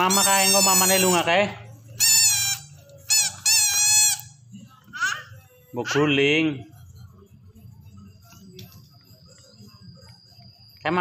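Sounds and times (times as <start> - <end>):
toy trumpet honks: 0.0 - 1.3, 2.0 - 4.3.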